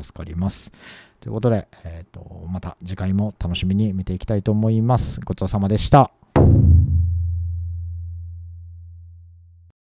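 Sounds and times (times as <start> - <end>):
deep bass boom: 6.4 - 9.3.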